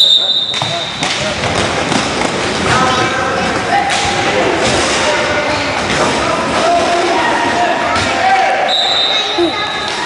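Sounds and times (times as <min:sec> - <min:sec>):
referee's whistle blast: 0:00.0 - 0:01.0, 0:08.7 - 0:09.3.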